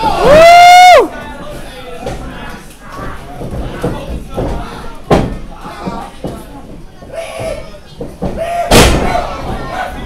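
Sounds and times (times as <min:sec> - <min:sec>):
body slamming onto ring mat: 0:08.2 - 0:09.6.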